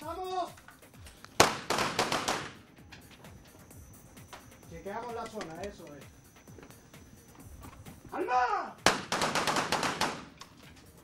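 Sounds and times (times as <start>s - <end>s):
faint music: 0.0s - 11.0s
pistol shots ringing indoors: 8.9s - 10.3s.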